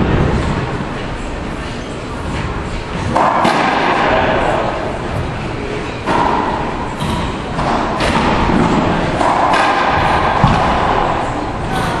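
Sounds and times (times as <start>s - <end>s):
racquetball thuds echoing: 3.0s - 5.3s, 6.0s - 12.0s.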